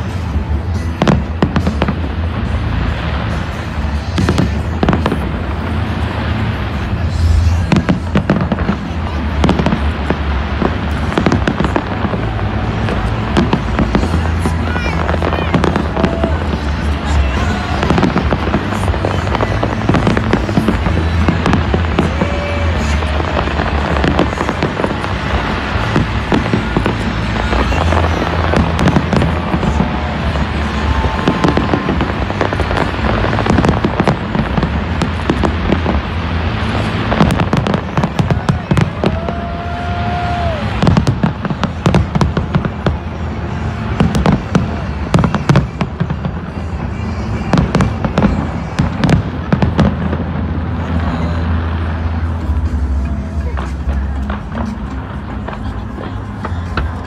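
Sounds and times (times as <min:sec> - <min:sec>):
fireworks bangs and crackling: 0:00.0 - 0:57.0.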